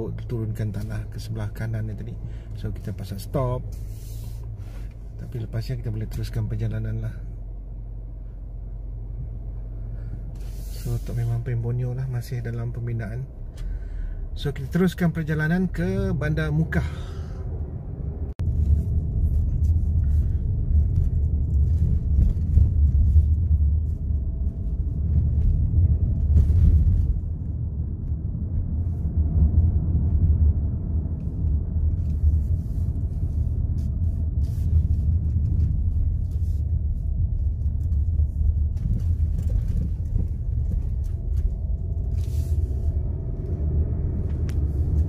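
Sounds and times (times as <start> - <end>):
car cabin rumble: 0.0 - 45.0.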